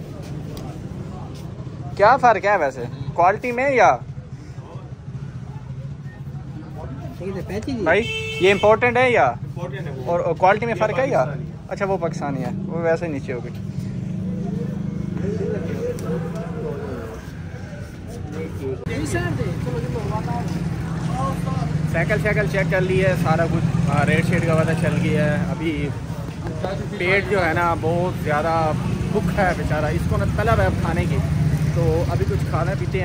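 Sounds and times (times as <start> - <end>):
faint background voices: 0.0 - 32.6.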